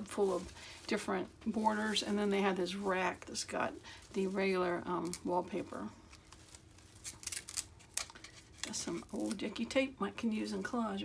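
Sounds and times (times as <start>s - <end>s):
paper rustling and crackling: 0.0s - 9.4s.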